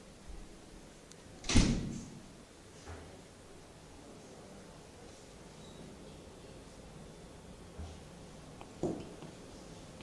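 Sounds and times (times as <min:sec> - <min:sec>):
door thump: 0:01.4 - 0:02.1.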